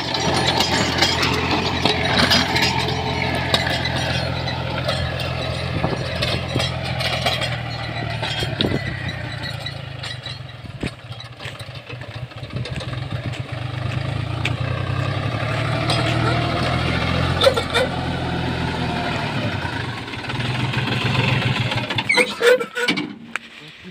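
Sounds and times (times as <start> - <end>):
rotavator tilling soil: 0.0 - 23.9
tractor diesel engine under load: 0.0 - 23.9.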